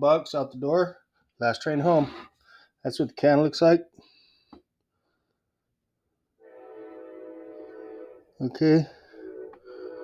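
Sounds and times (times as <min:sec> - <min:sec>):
steady held chord: 0:06.4 - 0:10.0.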